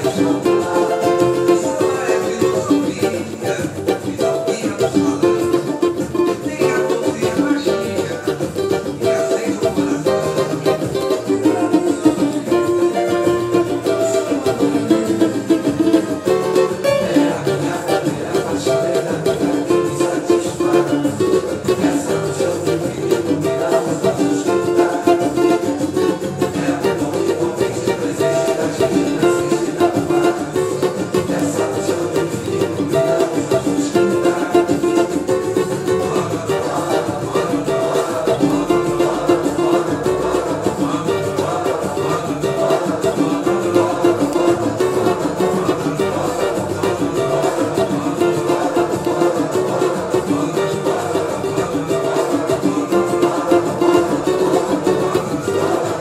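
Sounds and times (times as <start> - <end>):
cavaquinho strumming chords: 0.0 - 56.0.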